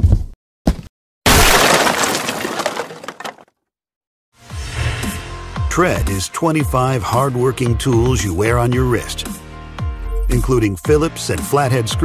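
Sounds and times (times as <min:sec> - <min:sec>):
loud shattering crash: 0:01.3 - 0:03.4.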